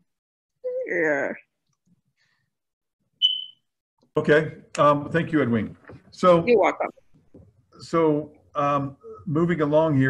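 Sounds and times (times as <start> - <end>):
short high-pitched beep: 3.2 - 3.6.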